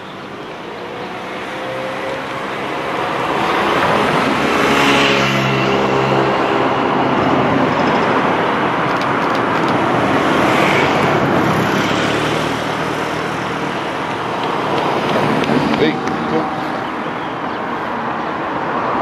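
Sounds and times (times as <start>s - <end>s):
cars driving past: 0.6s - 19.0s.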